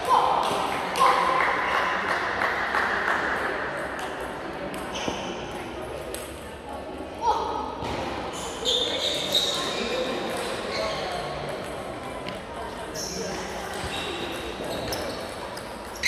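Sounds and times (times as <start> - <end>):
murmur of voices: 0.0 - 16.0
short high-pitched squeaks: 8.4 - 10.0.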